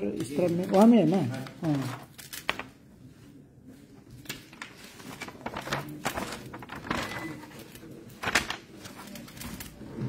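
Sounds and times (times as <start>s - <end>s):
paper sheets rustling: 0.0s - 10.0s.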